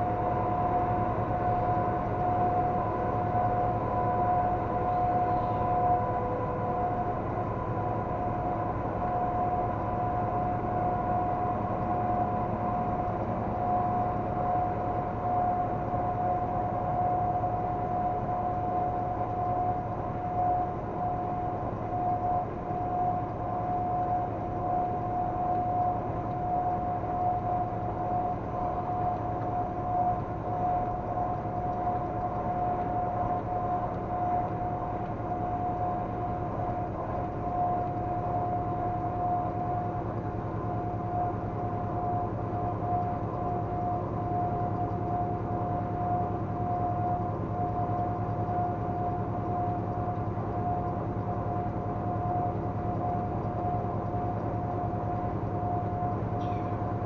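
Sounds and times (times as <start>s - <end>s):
constant high whine: 0.0s - 57.0s.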